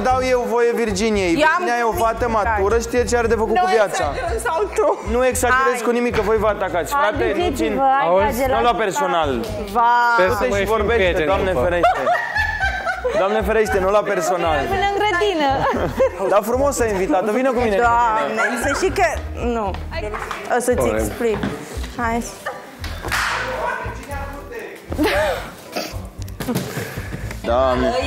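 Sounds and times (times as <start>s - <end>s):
background music: 0.0s - 28.0s
man speaking: 10.2s - 12.1s, 20.8s - 21.2s
laughter: 11.8s - 14.7s, 15.4s - 16.3s.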